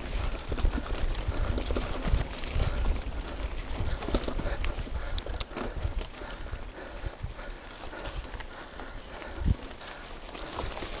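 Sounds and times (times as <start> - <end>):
bike chain and frame rattling: 0.0 - 11.0
tyres rushing on dirt: 0.0 - 11.0.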